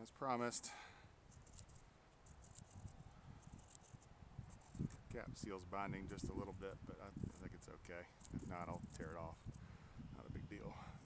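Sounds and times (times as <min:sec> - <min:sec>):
wind rumble on microphone: 0:02.4 - 0:11.0.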